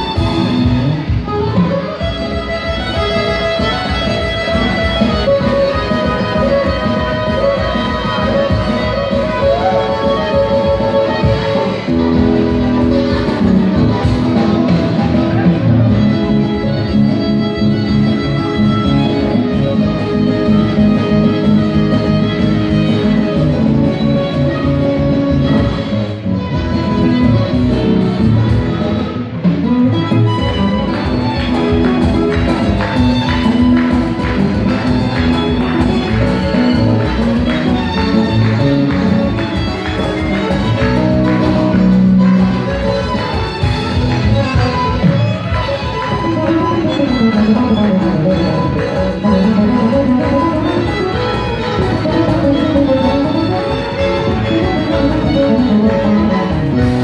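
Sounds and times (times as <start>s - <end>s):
accordion: 0.0s - 57.0s
bass guitar: 0.0s - 57.0s
congas: 0.0s - 57.0s
drums: 0.0s - 57.0s
fiddle playing tune: 0.0s - 57.0s
guitar: 0.0s - 57.0s
violin: 0.0s - 57.0s.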